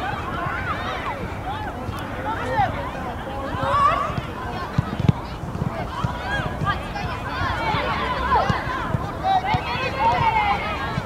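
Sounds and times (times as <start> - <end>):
people shouting and calling: 0.0 - 5.0, 5.8 - 11.0.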